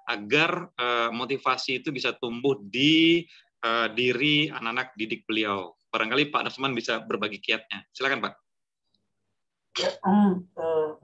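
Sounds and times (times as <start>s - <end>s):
man clearing his throat: 9.8s - 10.0s.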